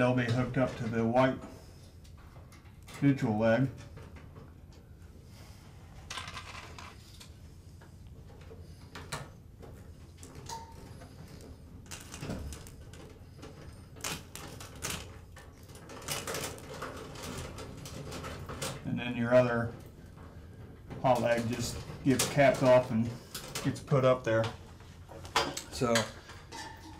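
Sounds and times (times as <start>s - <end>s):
wires and plastic connectors clicking: 10.2s - 19.9s.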